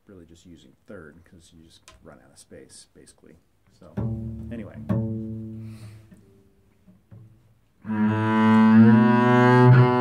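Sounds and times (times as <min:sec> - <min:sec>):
double bass string plucked: 0:03.8 - 0:10.0.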